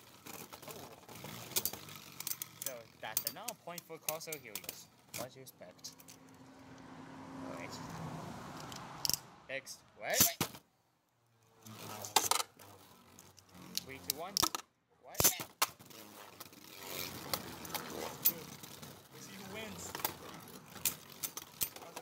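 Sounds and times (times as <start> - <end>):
plastic toy clicks and clinks: 1.3 - 6.2, 13.2 - 15.8, 18.1 - 22.0.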